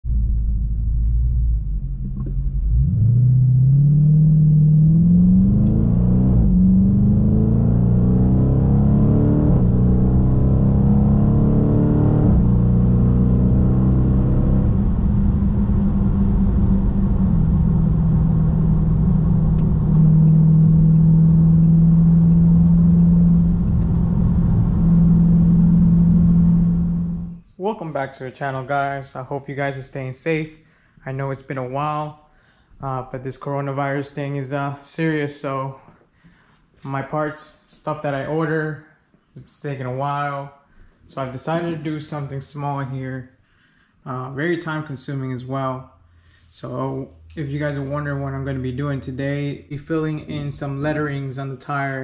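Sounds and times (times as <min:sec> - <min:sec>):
car engine accelerating through gears: 0:00.1 - 0:27.4.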